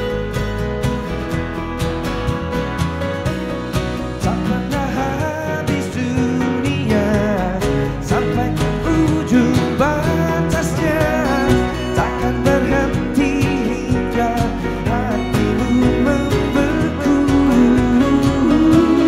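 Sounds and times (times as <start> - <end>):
live acoustic band music: 0.0 - 19.0
man singing lead vocal: 4.1 - 19.0.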